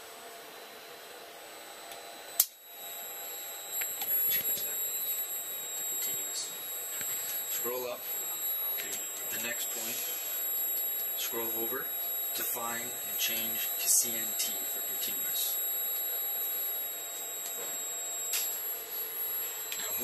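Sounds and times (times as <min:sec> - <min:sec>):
sharp click: 0:02.4 - 0:02.6
high-pitched electronic tone: 0:02.8 - 0:20.0.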